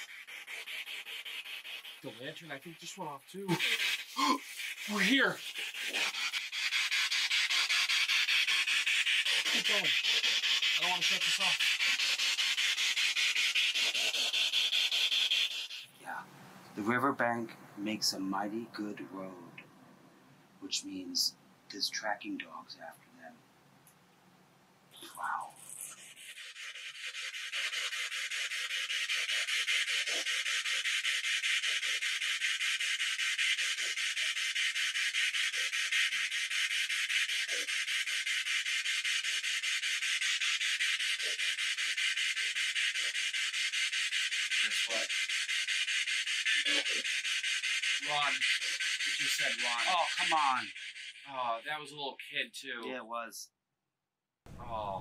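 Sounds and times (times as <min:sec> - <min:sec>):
pulsing radio static hiss: 0:00.0 - 0:17.0, 0:25.0 - 0:51.7
pulsing radio static: 0:09.5 - 0:09.9.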